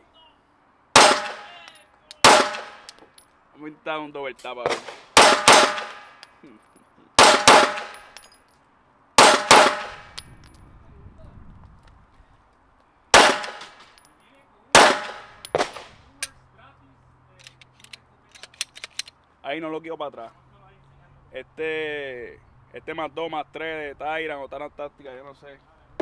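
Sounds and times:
pistol shots: 1.0 - 1.6, 2.2 - 2.9, 4.7 - 6.2, 7.2 - 8.1, 9.2 - 10.2, 13.1 - 13.8, 14.8 - 15.9
metallic clicks of pistol handling: 2.8 - 3.3, 17.4 - 19.3.

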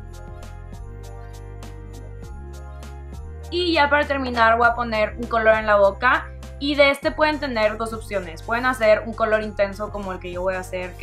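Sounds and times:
instrumental hip-hop music: 0.0 - 3.5.

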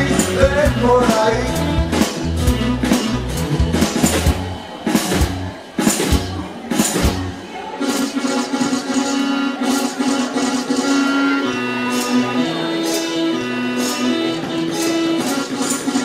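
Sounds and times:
electric bass: 0.0 - 7.4
electric guitar: 0.0 - 7.4
drum kit hits: 1.8 - 7.3.

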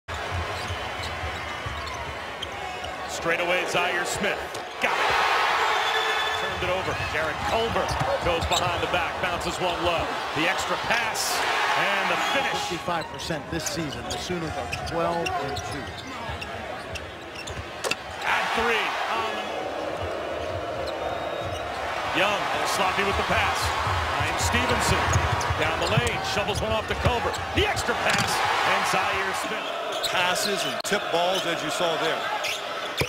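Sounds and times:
murmur of arena crowd: 0.1 - 33.0
basketball bouncing on hardwood: 23.7 - 26.2.

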